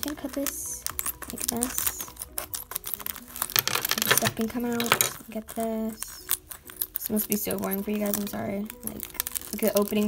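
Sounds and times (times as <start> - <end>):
plastic crinkling: 0.0 - 10.0
scissors snipping plastic: 0.0 - 10.0.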